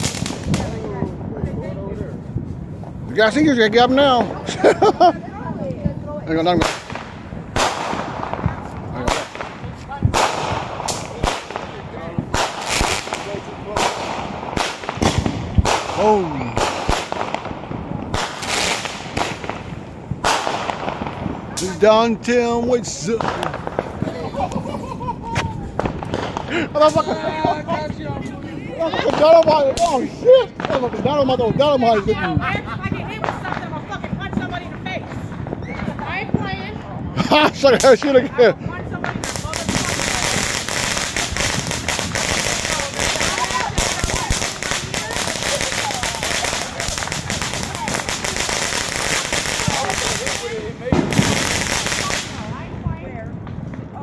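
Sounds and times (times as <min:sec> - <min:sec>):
fireworks banging: 0:00.0 - 0:54.0
fireworks hissing: 0:02.2 - 0:36.7, 0:37.6 - 0:52.7.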